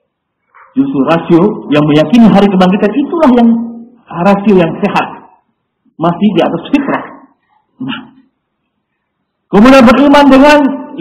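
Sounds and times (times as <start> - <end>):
man speaking: 0.8 - 8.2, 9.5 - 11.0.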